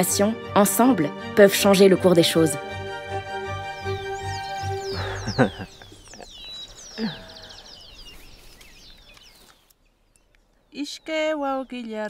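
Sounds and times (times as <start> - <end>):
birds chirping and calling: 0.0 - 12.0
lower falling bird call: 3.3 - 12.0.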